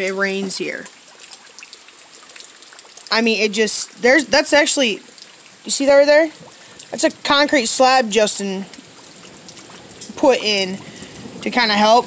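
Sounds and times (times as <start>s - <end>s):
rain splashing into water: 0.0s - 12.0s.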